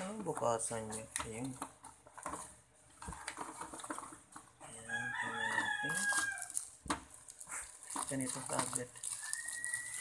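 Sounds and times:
plastic packaging rustling: 0.0 - 10.0.

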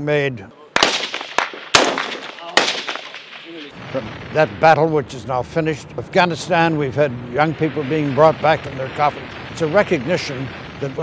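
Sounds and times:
rifle shots echoing: 0.8 - 4.4.

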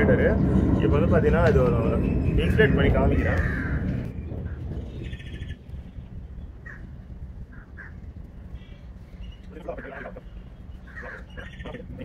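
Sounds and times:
birds chirping: 0.0 - 12.0
low background rumble: 0.0 - 12.0
bird trill: 1.8 - 12.0.

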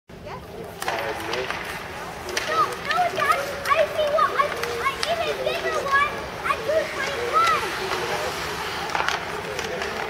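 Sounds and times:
children shouting: 2.5 - 8.0.

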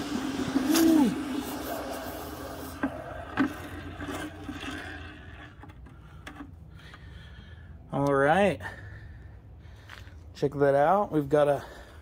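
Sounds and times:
hot metal sizzling in water: 0.0 - 4.8.

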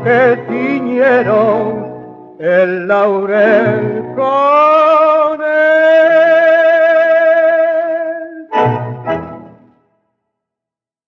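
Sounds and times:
tango orchestra playing: 0.0 - 2.6, 3.3 - 4.5, 8.5 - 9.8.

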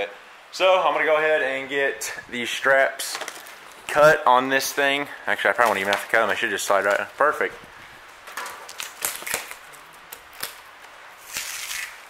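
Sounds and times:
plastic wrap rustling: 2.8 - 12.0.

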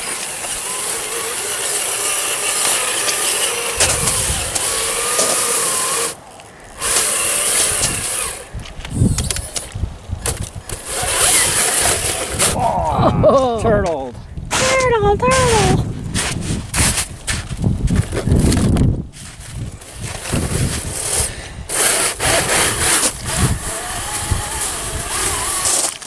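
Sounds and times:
tyres churning through slushy snow: 0.0 - 6.2, 10.8 - 12.7, 19.2 - 26.0
toy truck electric motor whining: 0.0 - 12.6, 19.3 - 26.0.

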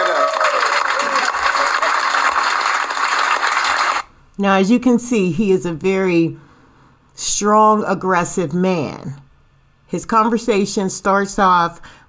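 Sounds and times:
audience applauding: 0.0 - 4.1.

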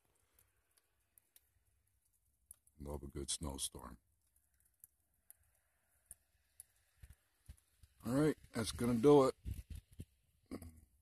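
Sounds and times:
faint clicks: 4.2 - 8.0.

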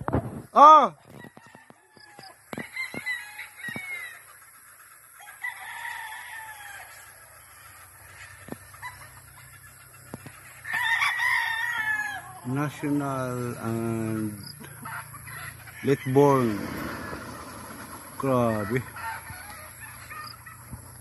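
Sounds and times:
cockerels crowing: 1.0 - 4.4, 5.1 - 21.0
chickens clucking: 1.9 - 5.4, 6.5 - 10.8, 12.1 - 21.0.

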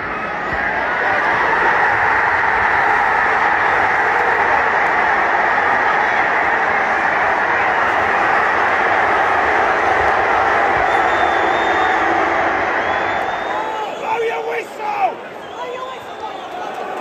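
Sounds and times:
stadium crowd roaring: 0.0 - 17.0.

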